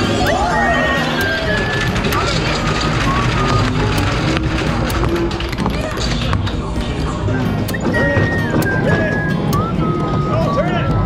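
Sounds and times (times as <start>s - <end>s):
arcade game tones and jingles: 0.0s - 4.2s
air hockey pucks clacking: 0.0s - 10.3s.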